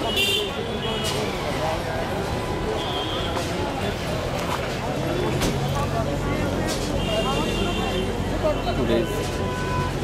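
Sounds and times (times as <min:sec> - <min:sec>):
crowd voices: 0:00.0 - 0:10.0
traffic noise: 0:00.0 - 0:10.0.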